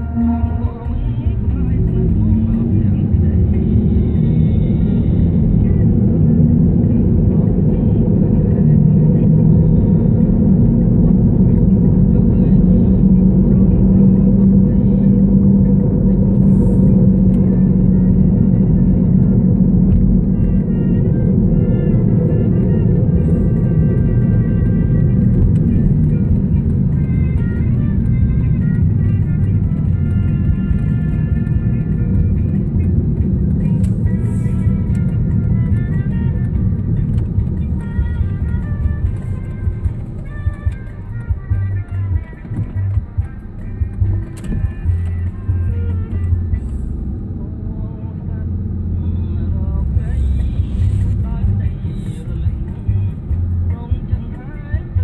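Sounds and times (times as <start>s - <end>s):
music playing: 0.0s - 47.8s, 48.4s - 55.0s
car engine and tyres rumble: 0.0s - 55.0s.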